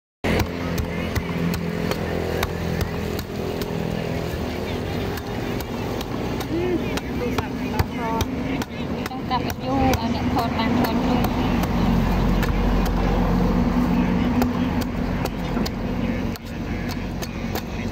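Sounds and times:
background voices: 0.2 - 17.9
cleaver chopping coconut husk: 0.2 - 17.9.

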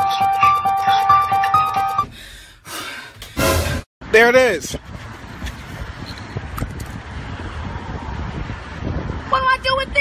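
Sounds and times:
wind buffeting microphone: 4.6 - 10.0.

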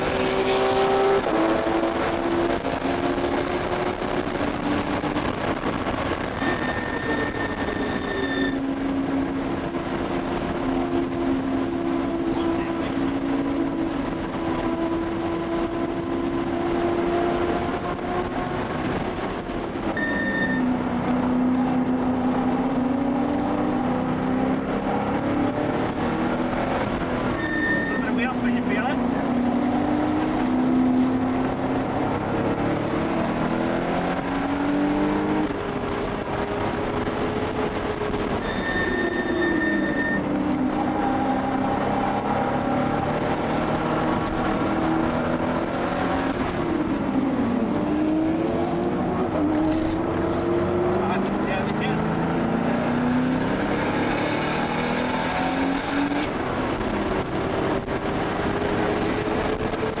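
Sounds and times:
car engine accelerating: 0.0 - 60.0
high steady tone: 20.0 - 20.8, 38.4 - 40.3.

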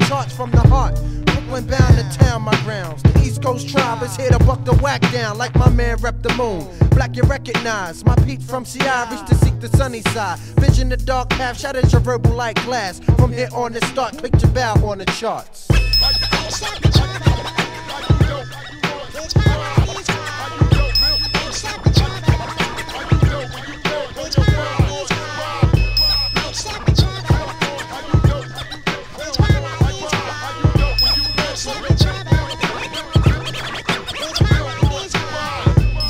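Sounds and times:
deep bass line: 0.0 - 15.0, 15.7 - 18.6, 19.4 - 23.7, 24.4 - 28.7, 29.4 - 32.6, 34.4 - 36.0
hip hop beat: 0.0 - 36.0
person rapping: 0.0 - 36.0
turntable scratching: 0.0 - 36.0.

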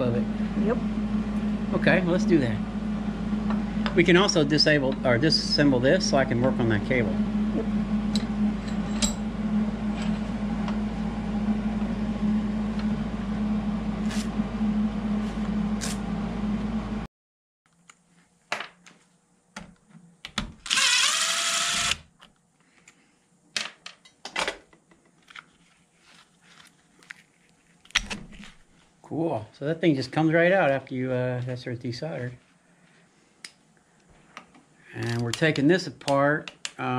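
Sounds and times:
machine hum: 0.0 - 17.1
cordless drill spinning: 20.6 - 22.0.

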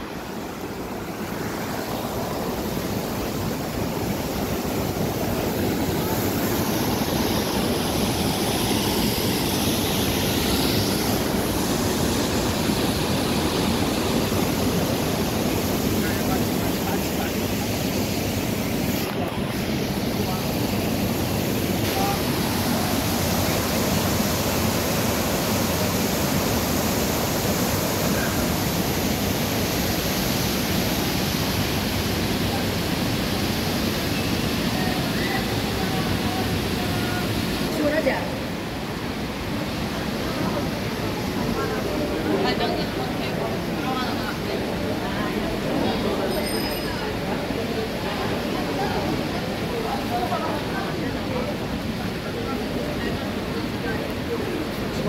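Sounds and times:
people's voices: 0.0 - 24.7, 32.2 - 38.6, 39.4 - 55.0
stream water flowing over stones: 0.0 - 42.2.

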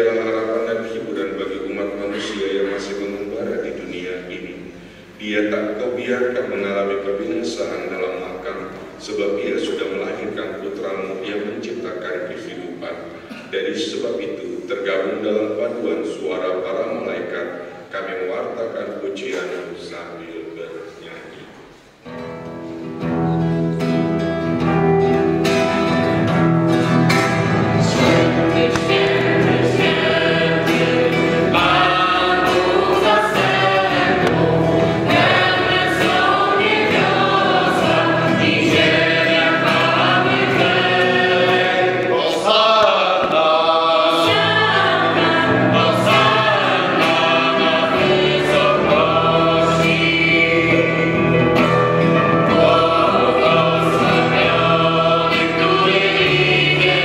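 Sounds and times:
strummed acoustic guitar: 22.0 - 57.0
mixed choir singing: 27.3 - 57.0.

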